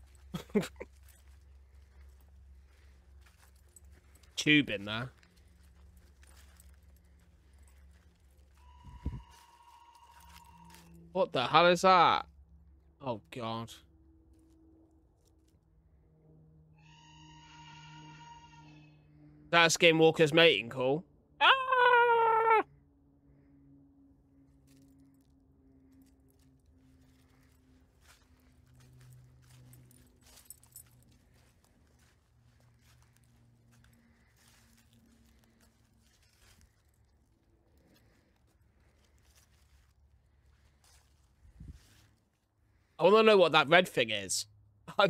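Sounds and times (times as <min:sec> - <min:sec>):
low hum: 0:00.0 - 0:19.5
cat-like wailing cry: 0:21.4 - 0:22.7.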